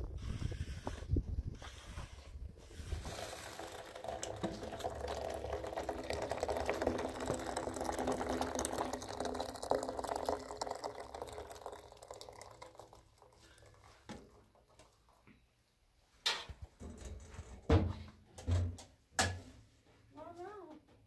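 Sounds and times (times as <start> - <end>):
water pouring into metal teapot: 1.8 - 15.2.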